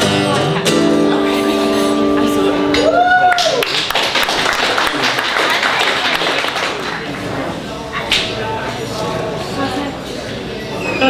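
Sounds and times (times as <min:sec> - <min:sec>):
acoustic guitar: 0:00.0 - 0:03.3
audience applauding: 0:02.9 - 0:07.2.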